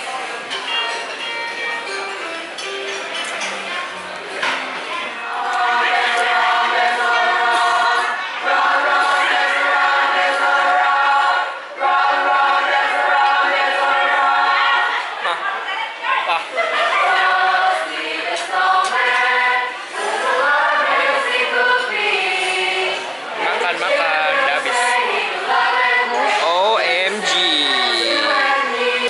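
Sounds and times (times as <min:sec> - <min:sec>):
choir singing held chords: 0:05.0 - 0:29.0.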